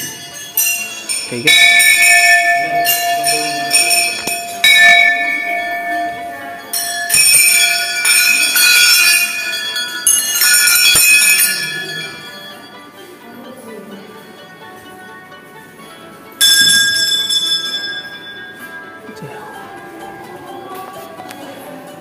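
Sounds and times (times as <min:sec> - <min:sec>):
temple bells clanging: 0:00.0 - 0:13.0, 0:16.2 - 0:19.0.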